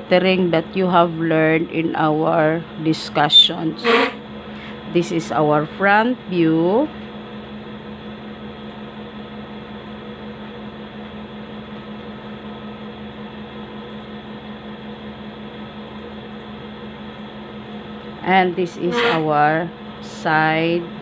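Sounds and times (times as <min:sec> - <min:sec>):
steady low hum with hiss: 0:00.0 - 0:21.0.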